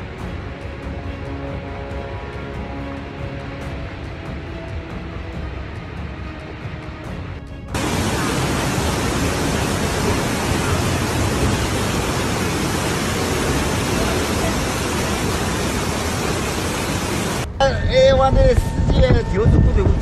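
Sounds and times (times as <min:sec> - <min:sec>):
floodwater rushing down a street: 0:07.8 - 0:17.5.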